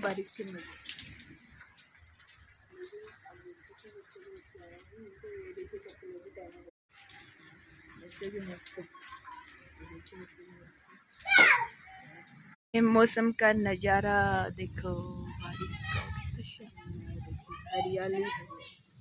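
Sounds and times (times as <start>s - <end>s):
steady rain falling: 0.0s - 12.6s, 13.8s - 19.0s
voices talking: 2.6s - 18.9s.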